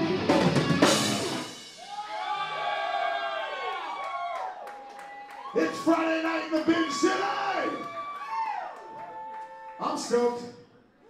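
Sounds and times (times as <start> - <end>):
person yelling: 5.6 - 7.8.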